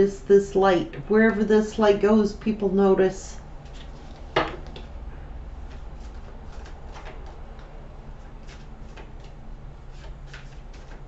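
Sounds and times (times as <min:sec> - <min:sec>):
low room hum: 0:00.0 - 0:11.0
cards being shuffled: 0:05.6 - 0:11.0.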